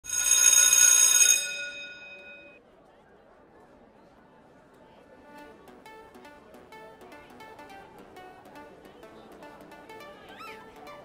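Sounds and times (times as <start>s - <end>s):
school bell ringing: 0.0s - 2.6s.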